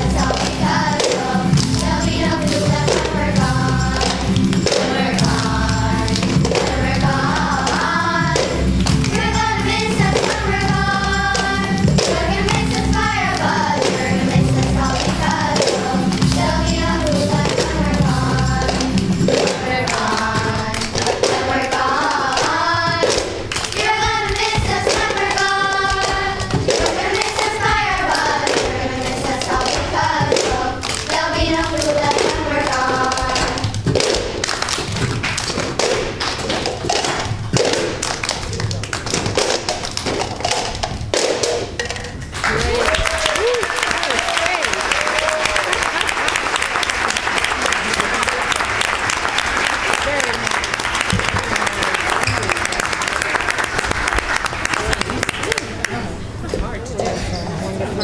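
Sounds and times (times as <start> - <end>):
girls singing: 0.0 - 38.3
backing music: 0.0 - 56.4
rhythmic taps and claps: 0.0 - 56.7
plastic cups tapping on tiled floor: 28.1 - 42.4.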